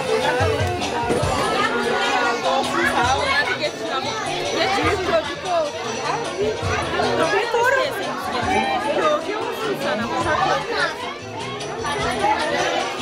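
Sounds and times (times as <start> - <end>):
music playing: 0.0 - 13.0
people talking over one another: 0.0 - 13.0.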